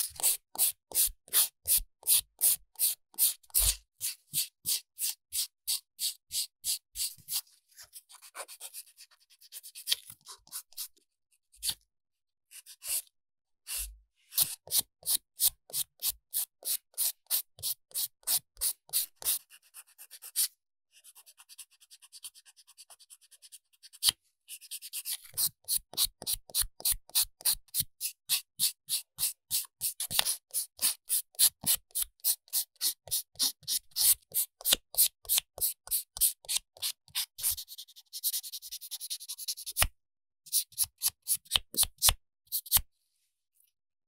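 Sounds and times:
nail file sanding fingernail: 0.0 - 7.4, 14.4 - 19.4, 24.6 - 42.9.

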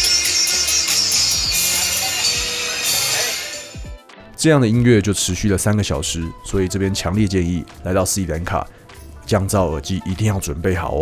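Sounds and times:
loud pop music through speaker: 0.0 - 4.0.

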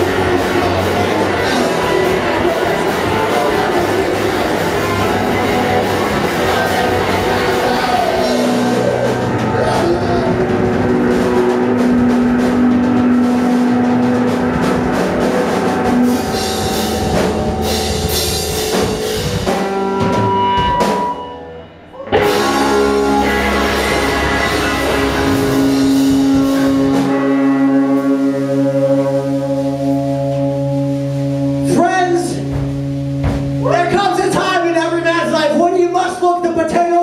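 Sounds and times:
electric guitars: 0.0 - 35.7
drum kit: 0.0 - 36.0
rock band playing live: 0.0 - 37.0.

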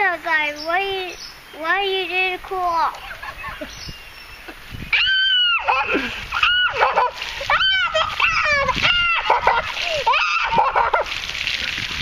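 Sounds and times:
child squealing: 4.9 - 11.0
water splashing from bucket: 5.4 - 12.0.

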